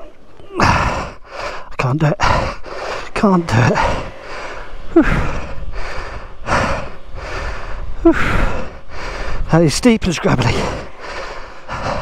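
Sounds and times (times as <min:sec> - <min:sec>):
person breathing hard: 0:00.6 - 0:09.5, 0:10.4 - 0:12.0
person gasping: 0:10.4 - 0:12.0.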